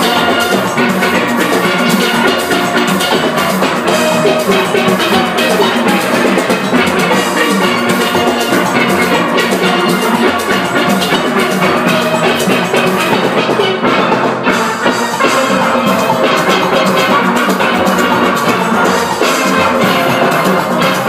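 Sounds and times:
steady percussion beat: 0.0s - 21.0s
steel pans playing: 0.0s - 21.0s.

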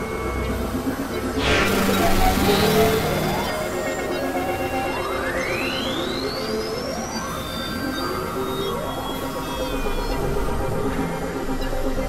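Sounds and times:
drone tones and noise: 0.0s - 12.0s
rising pure tone sweep: 1.4s - 5.2s.

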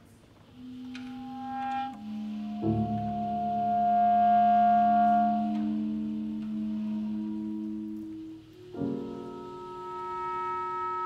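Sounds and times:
clarinet and saxophone chord: 0.5s - 11.0s.

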